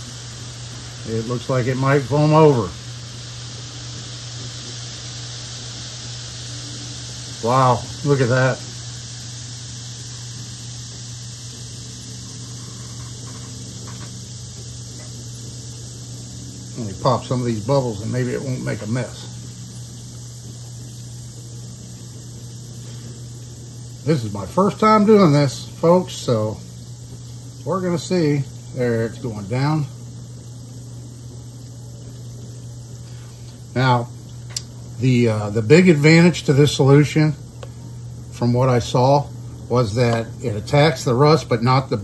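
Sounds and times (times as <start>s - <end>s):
fizzing foam hiss: 0.0s - 42.0s
low steady hum: 0.0s - 42.0s.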